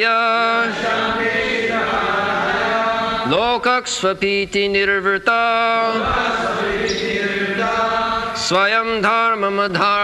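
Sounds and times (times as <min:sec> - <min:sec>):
group chanting in unison: 0:00.0 - 0:03.7, 0:05.6 - 0:08.9.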